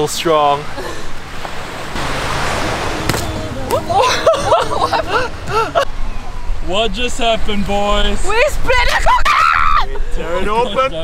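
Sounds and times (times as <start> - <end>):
surf washing on sandy beach: 0.0 - 5.8.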